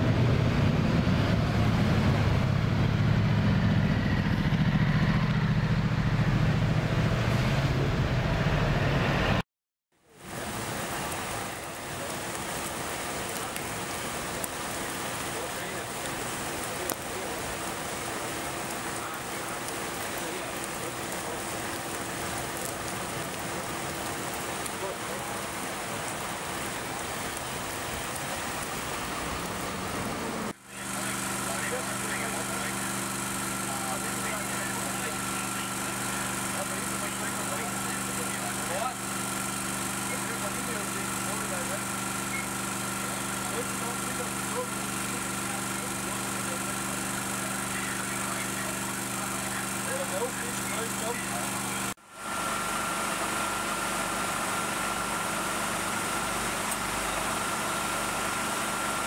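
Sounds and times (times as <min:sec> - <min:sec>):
engine-driven pump droning: 0:00.0 - 0:09.4, 0:10.0 - 0:59.0
rain hissing on road: 0:10.1 - 0:59.0
water noise: 0:10.1 - 0:59.0.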